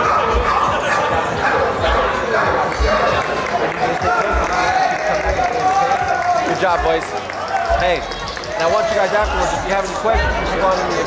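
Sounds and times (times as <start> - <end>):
voices: 0.0 - 11.0
music with deep bass beat: 0.2 - 11.0.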